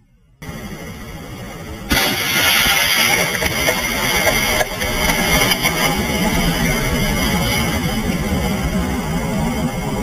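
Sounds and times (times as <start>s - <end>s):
rocket motor exhaust roar: 0.4s - 10.0s.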